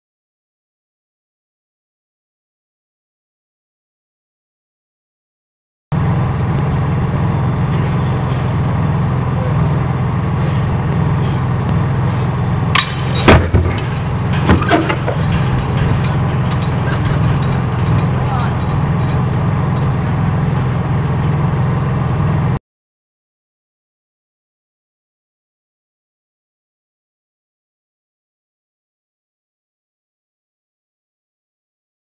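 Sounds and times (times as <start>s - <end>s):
low engine hum: 5.9s - 22.6s
loud sharp metal impact: 10.3s - 20.5s
heavy object knocking on ground: 12.9s - 20.0s.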